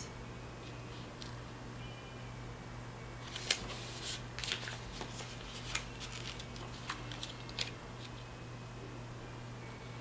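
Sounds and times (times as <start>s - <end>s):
low steady hum: 0.0s - 10.0s
stickers peeled off backing: 3.3s - 8.2s.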